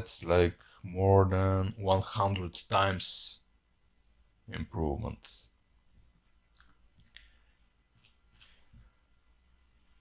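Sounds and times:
mouse and keyboard clicks: 0:07.9 - 0:08.6.

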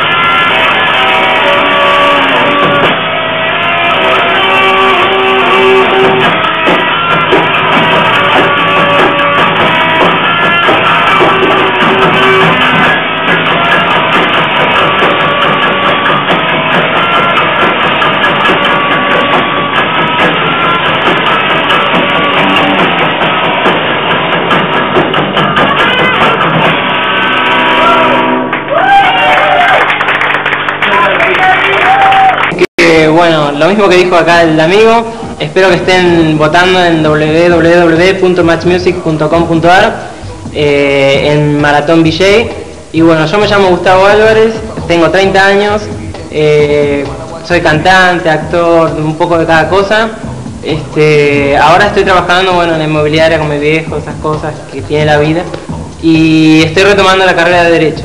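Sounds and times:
electric guitars sustained chord: 0:00.0 - 0:22.9
electric guitar through amplifier: 0:00.0 - 0:58.0.

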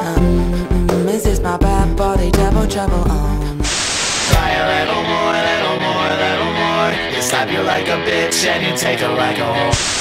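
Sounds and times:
song music: 0:00.0 - 0:09.7
song with guitar: 0:00.0 - 0:10.0
burst of static hiss: 0:03.6 - 0:04.8, 0:09.7 - 0:10.0.

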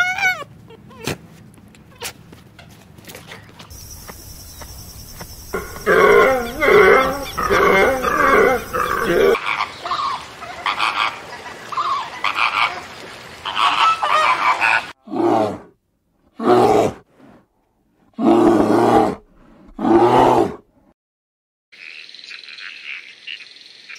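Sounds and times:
high steady chirring: 0:03.7 - 0:09.4
rapid repeated animal calls: 0:03.7 - 0:09.6
loud animal calls: 0:03.8 - 0:09.7.

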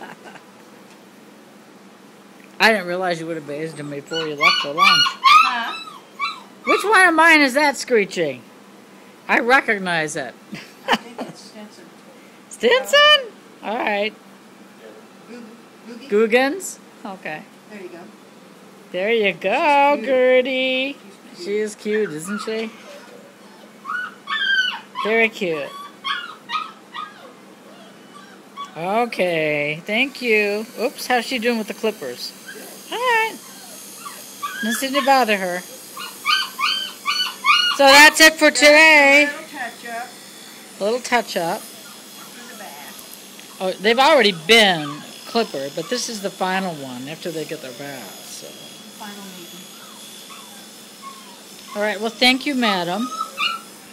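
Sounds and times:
electric clippers buzzing: 0:02.6 - 0:07.9, 0:19.2 - 0:22.9, 0:24.7 - 0:26.7, 0:28.6 - 0:53.9
puppy whining: 0:03.6 - 0:07.3, 0:21.4 - 0:29.1, 0:32.4 - 0:39.3, 0:41.6 - 0:46.3, 0:49.0 - 0:53.9.

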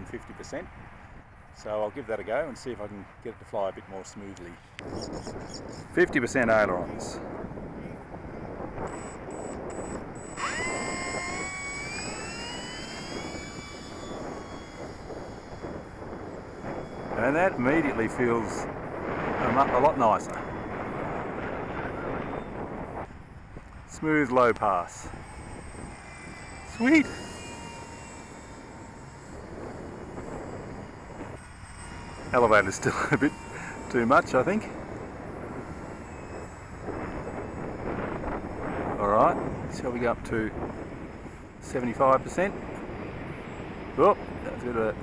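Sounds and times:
model plane motor whine: 0:03.7 - 0:45.0.

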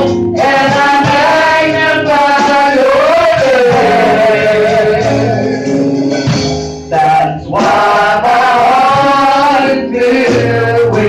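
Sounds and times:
woman singing gospel: 0:00.0 - 0:05.8, 0:06.9 - 0:11.0
instrumental accompaniment: 0:00.0 - 0:11.0.

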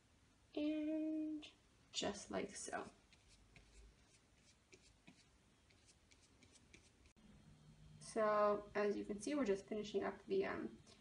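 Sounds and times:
paintbrush scratching on cork: 0:02.8 - 0:07.2.

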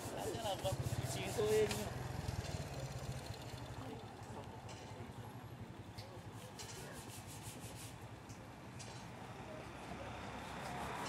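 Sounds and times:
low fluttering street rumble: 0:00.0 - 0:11.0.

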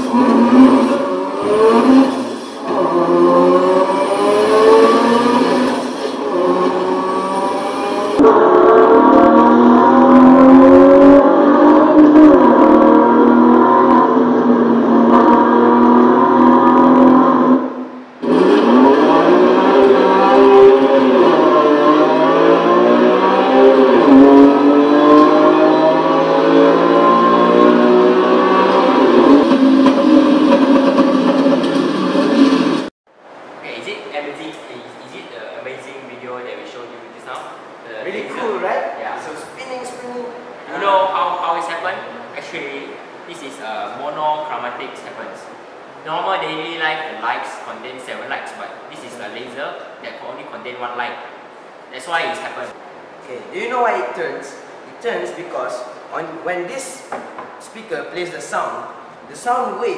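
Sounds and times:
sliding pitched tones from loudspeaker: 0:00.0 - 0:32.9.

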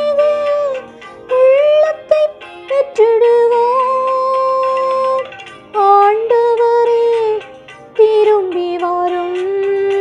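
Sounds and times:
instrumental accompaniment: 0:00.0 - 0:10.0
person singing: 0:00.0 - 0:10.0.

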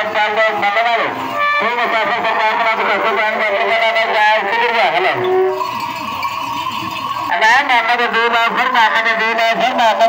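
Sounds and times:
camel bells ringing: 0:00.0 - 0:10.0.

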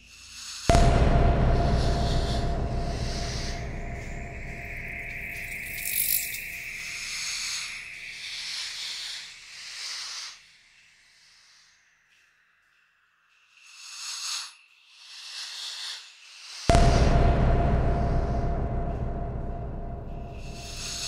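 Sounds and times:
low rumble: 0:00.7 - 0:07.1, 0:16.7 - 0:21.0
steady high tone: 0:00.7 - 0:07.8, 0:16.7 - 0:21.0
ambient electronic music: 0:00.7 - 0:08.1, 0:16.7 - 0:21.0
hiss-like texture: 0:00.7 - 0:09.2, 0:16.7 - 0:21.0.

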